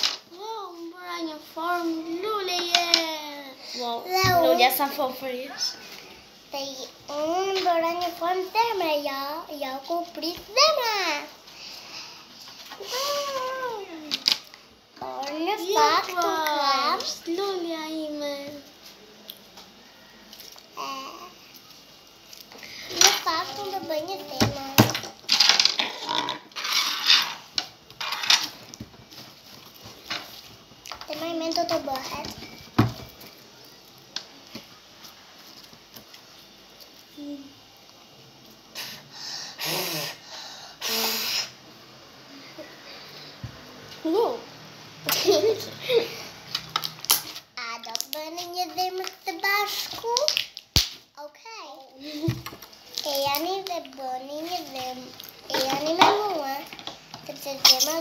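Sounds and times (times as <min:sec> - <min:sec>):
child giggling: 0:45.1 - 0:46.3.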